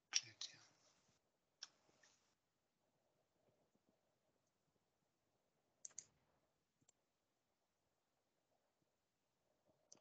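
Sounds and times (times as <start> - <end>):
mouse and keyboard clicks: 5.8 - 6.2.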